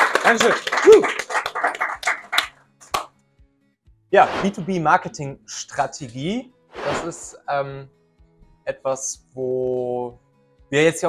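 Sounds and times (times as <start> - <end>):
hand claps: 0.0 - 3.1.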